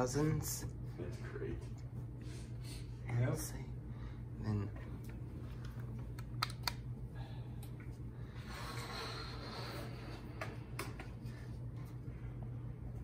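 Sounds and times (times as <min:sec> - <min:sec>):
ceiling fan humming: 0:00.0 - 0:13.0
sharp clicks: 0:06.1 - 0:06.8.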